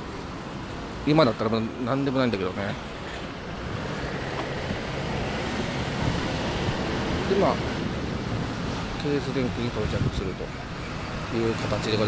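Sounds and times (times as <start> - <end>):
road traffic noise: 0.0 - 12.0
wind rushing over microphone: 3.5 - 10.4.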